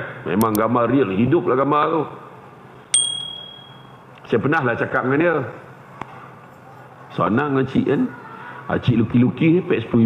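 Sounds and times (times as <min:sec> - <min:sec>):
bright bell ding: 0:03.0 - 0:04.0.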